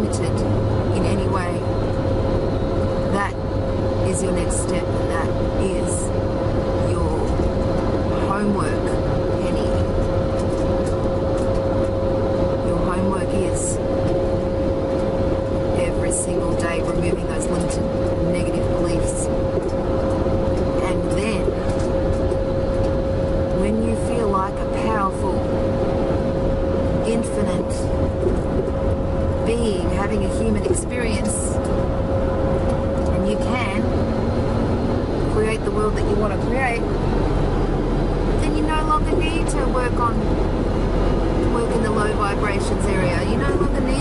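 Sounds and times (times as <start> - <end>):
car cabin road and engine rumble: 0.0 - 44.0
constant steady tone: 0.0 - 44.0.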